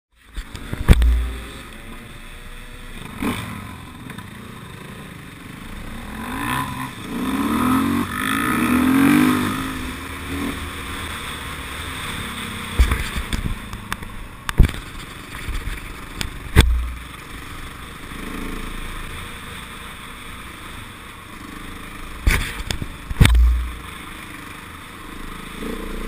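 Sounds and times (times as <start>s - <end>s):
dirt bike engine revving: 0.4s - 13.9s, 15.8s - 20.0s, 21.5s - 24.3s
loud low thump: 0.8s - 1.4s, 16.5s - 17.0s, 23.2s - 23.8s
sharp knocks: 0.8s - 1.5s, 16.5s - 17.0s, 22.3s - 23.8s.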